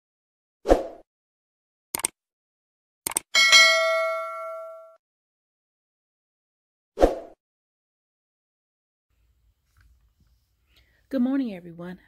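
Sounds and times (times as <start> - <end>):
short clicks: 1.9 - 2.2, 3.0 - 3.3
bright bell ding: 3.4 - 5.0.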